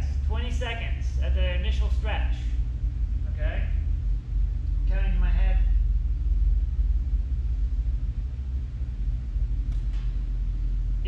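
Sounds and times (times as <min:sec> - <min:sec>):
room rumble and hum: 0:00.0 - 0:11.0.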